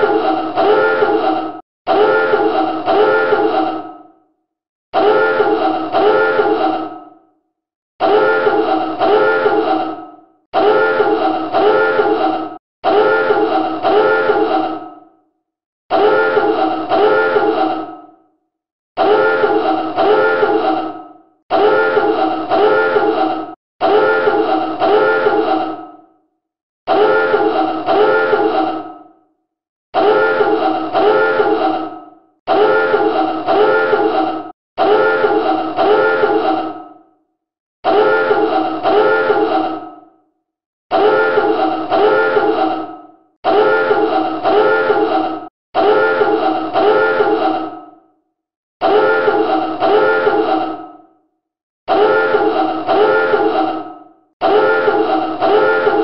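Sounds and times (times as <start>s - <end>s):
buzzy alarm horn blasts: 1.9s - 3.4s, 5.0s - 6.5s, 8.0s - 9.6s, 10.6s - 12.1s, 12.9s - 14.5s, 16.0s - 17.6s, 21.6s - 23.1s, 23.8s - 25.4s, 26.9s - 28.5s, 30.1s - 31.6s, 32.6s - 34.1s, 34.8s - 36.3s, 37.9s - 39.5s, 41.0s - 42.5s, 43.5s - 45.1s, 45.8s - 47.4s, 48.8s - 50.4s, 51.9s - 53.6s, 54.4s - 56.0s.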